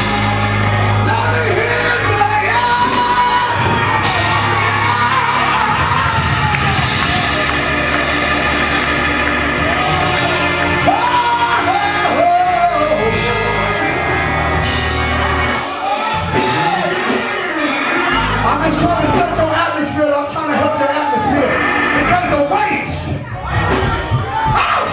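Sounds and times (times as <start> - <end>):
congregation singing and shouting: 0.0 - 24.9
live gospel music: 0.0 - 24.9.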